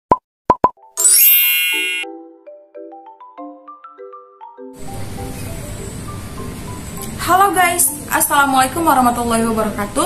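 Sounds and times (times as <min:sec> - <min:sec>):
bright shimmering chime: 0:01.0 - 0:02.1
plucked note melody: 0:01.0 - 0:02.4.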